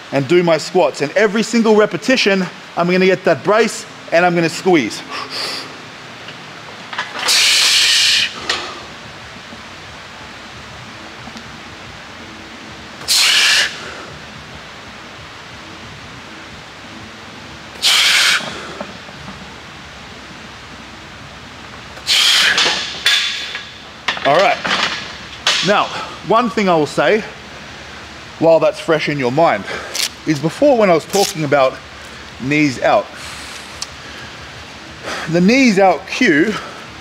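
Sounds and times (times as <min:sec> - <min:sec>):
loud hissing breaths: 0:05.1 - 0:05.8, 0:07.2 - 0:08.9, 0:13.0 - 0:14.2, 0:17.8 - 0:18.9, 0:22.0 - 0:23.6, 0:33.2 - 0:35.4.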